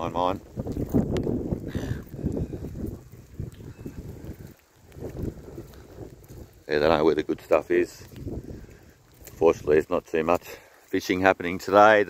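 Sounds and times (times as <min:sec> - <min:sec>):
wind buffeting microphone: 0:00.0 - 0:10.5
faint ticks: 0:03.4 - 0:06.4, 0:08.0 - 0:09.4.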